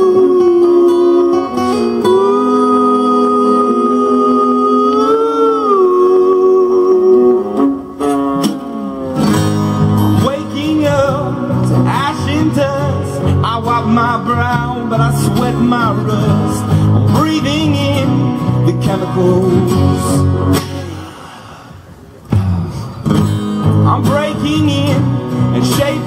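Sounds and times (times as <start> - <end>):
man singing: 0.0 - 21.4, 22.3 - 26.0
acoustic guitars strumming: 0.0 - 26.0.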